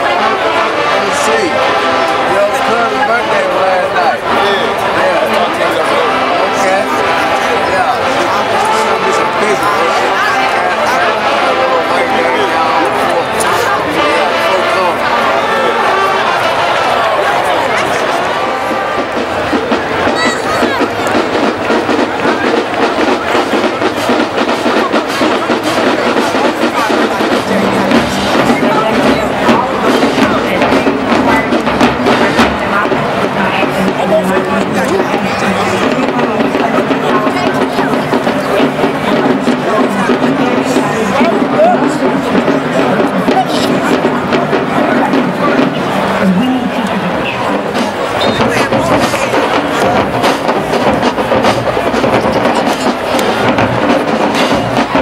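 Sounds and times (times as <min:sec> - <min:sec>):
brass chords: 0:00.0 - 0:55.0
snare drums: 0:00.0 - 0:55.0.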